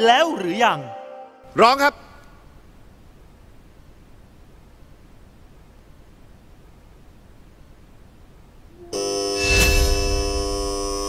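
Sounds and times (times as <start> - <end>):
harsh electronic buzzer: 8.8 - 11.0
low boom: 9.4 - 11.0.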